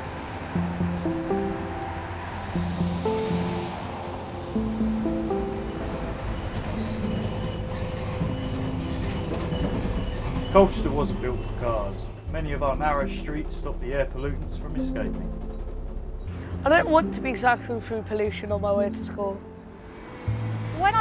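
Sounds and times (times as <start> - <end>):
slow melody over bass drone: 0.0 - 21.0.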